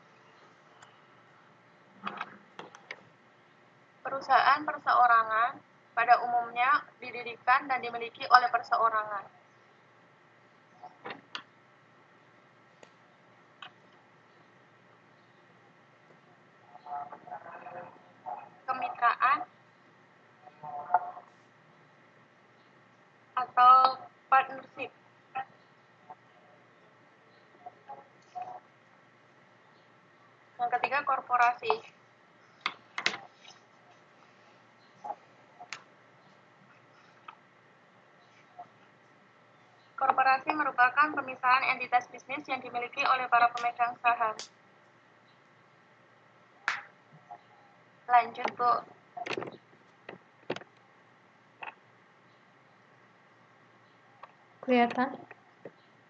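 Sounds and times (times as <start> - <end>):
faint background hiss: 0.0 - 56.0.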